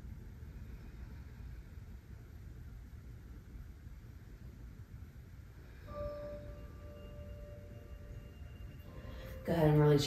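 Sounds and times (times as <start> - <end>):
bell-like chime ringing: 5.9 - 10.0.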